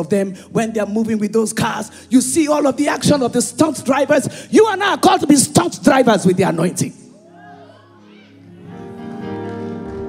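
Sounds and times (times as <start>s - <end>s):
soft music of sustained chords: 8.3s - 10.0s.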